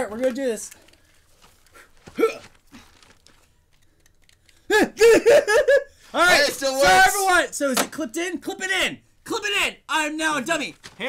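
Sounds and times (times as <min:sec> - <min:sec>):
person laughing: 0:04.7 - 0:05.9.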